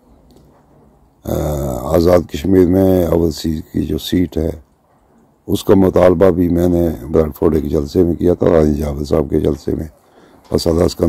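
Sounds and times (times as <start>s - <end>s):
man talking: 1.2s - 4.7s, 5.4s - 11.0s.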